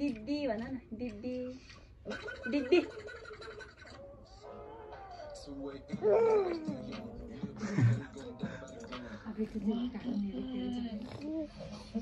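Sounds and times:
baby babbling: 0:05.9 - 0:07.1.

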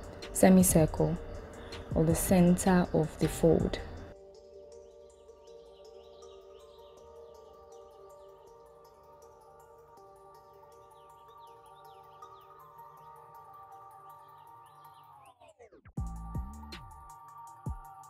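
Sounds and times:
ambient sustained tones: 0:00.0 - 0:15.3
bird-like chirps: 0:05.0 - 0:09.1, 0:10.4 - 0:15.4.

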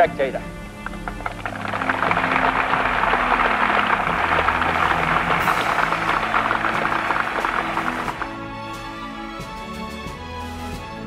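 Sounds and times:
crowd applauding: 0:00.8 - 0:08.5.

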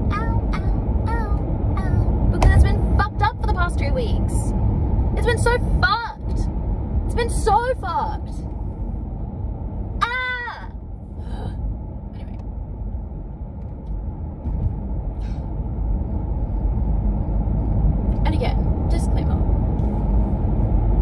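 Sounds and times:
woman's non-word vocal sounds: 0:00.0 - 0:04.5, 0:10.0 - 0:11.6
car road and engine noise: 0:00.0 - 0:21.0.

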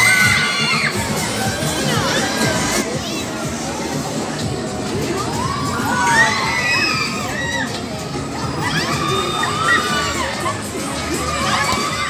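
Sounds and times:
children shouting and squealing: 0:00.0 - 0:03.7, 0:05.1 - 0:12.0
crowd hubbub: 0:00.0 - 0:12.0.

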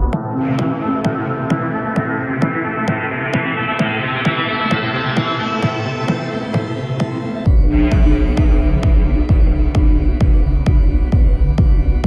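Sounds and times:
techno kick drum: 0:00.0 - 0:12.0
held synth tone: 0:07.5 - 0:12.0.

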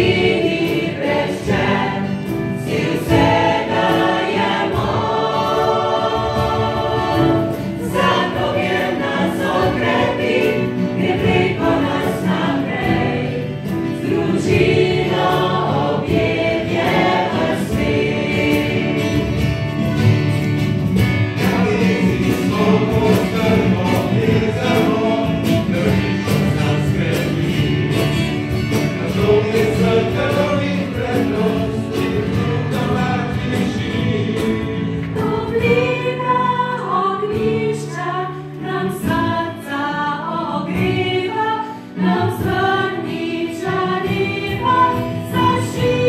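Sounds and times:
group singing choir-style: 0:00.0 - 0:46.0.

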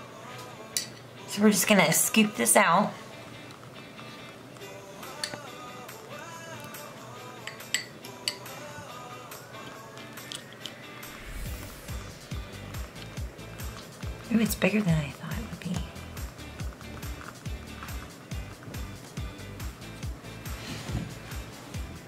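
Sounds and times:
background music: 0:00.0 - 0:22.0
fork clinking on glass jar: 0:07.4 - 0:08.5.

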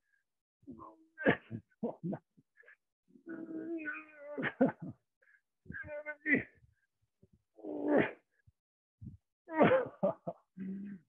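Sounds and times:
man laughing: 0:01.3 - 0:02.3, 0:04.4 - 0:05.0, 0:09.6 - 0:10.4.

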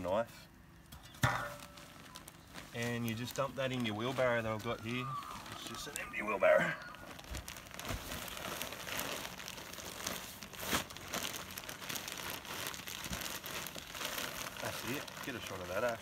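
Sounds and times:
plastic bag crinkling: 0:01.3 - 0:16.0
potting mix spilling: 0:01.3 - 0:16.0.

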